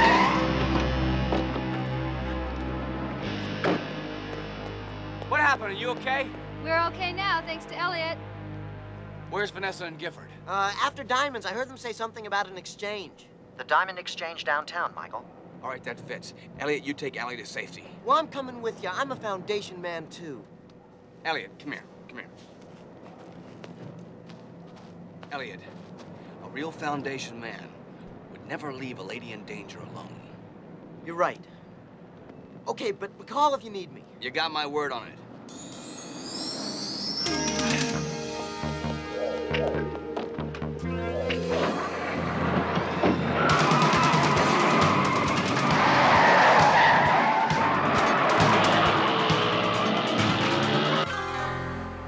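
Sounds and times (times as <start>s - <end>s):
tyre squeal: 0.0s - 2.2s
background music: 0.0s - 11.4s, 35.5s - 52.0s
low background hum: 4.5s - 35.6s
footsteps on dirt: 22.3s - 26.2s
car pulling away: 35.9s - 51.1s.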